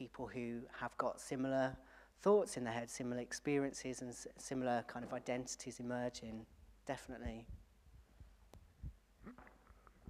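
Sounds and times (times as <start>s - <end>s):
faint low thumps: 6.5s - 9.6s.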